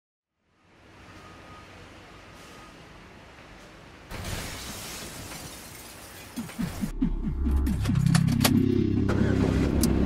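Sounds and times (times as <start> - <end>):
glass breaking crash: 4.1 - 6.5.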